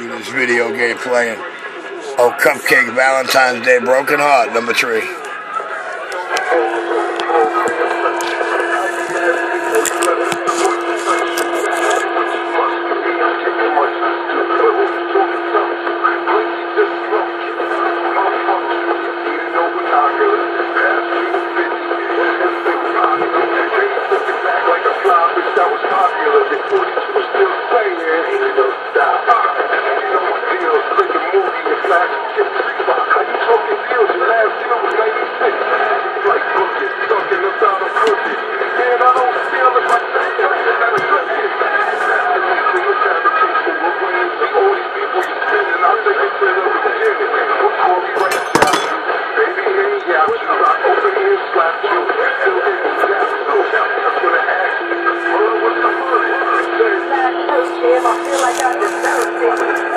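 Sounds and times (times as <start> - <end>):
steady hum tone: 0.0 - 29.1, 51.1 - 59.9
muffled voices through small speaker: 0.0 - 59.9.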